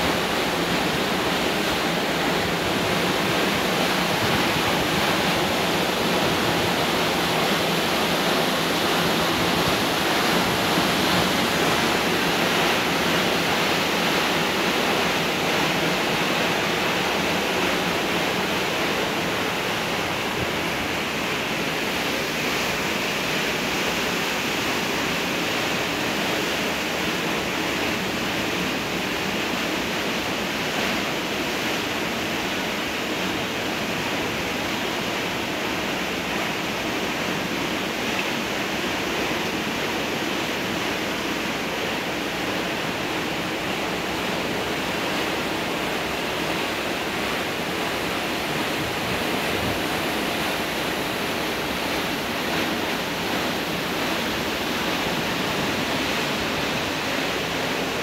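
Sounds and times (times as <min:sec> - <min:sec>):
water rushing through dam: 0:00.0 - 0:58.0.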